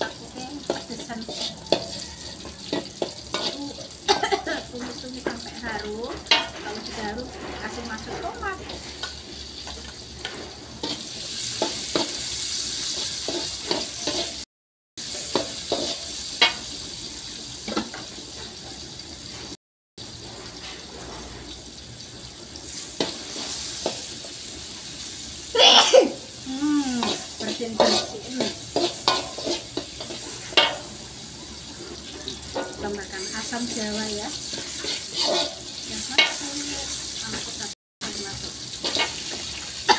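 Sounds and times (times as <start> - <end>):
metal spatula scraping a pan: 0.0 - 14.4, 15.0 - 16.7, 20.2 - 21.6, 22.7 - 24.4, 27.0 - 37.5, 38.1 - 39.9
food sizzling in a wok: 0.0 - 39.9.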